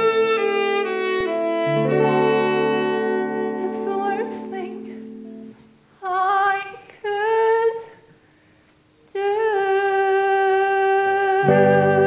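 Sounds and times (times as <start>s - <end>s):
woman singing: 0.0s - 5.4s, 6.0s - 8.1s, 9.1s - 12.0s.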